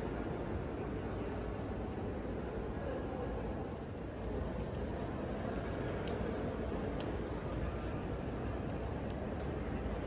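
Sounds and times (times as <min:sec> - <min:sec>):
echoing hubbub of voices: 0:00.0 - 0:10.0.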